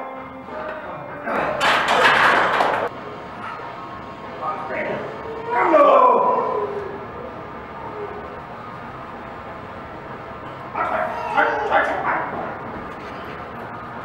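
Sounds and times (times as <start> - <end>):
room noise: 0.0 - 14.0
people shouting encouragement: 5.3 - 7.0, 10.8 - 12.4.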